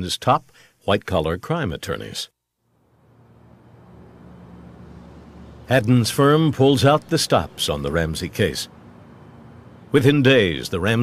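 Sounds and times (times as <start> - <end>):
distant traffic hum: 2.7 - 11.0.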